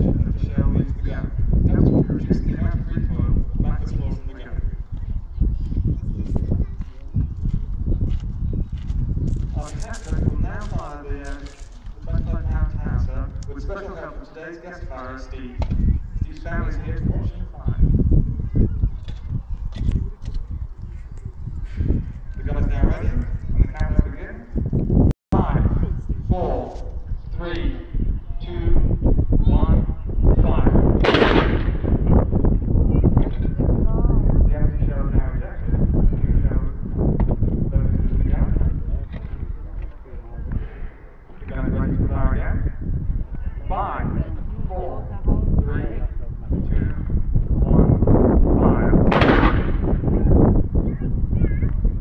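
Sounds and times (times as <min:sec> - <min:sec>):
people's voices: 0:00.0 - 0:52.0
wind rumbling on microphone: 0:00.0 - 0:52.0
field gun firing: 0:31.0 - 0:31.8, 0:49.1 - 0:49.8.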